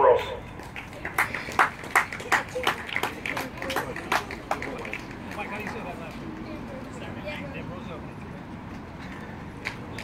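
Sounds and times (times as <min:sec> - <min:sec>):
voices chattering: 0:00.3 - 0:10.0
people clapping: 0:00.5 - 0:06.6, 0:09.6 - 0:10.0.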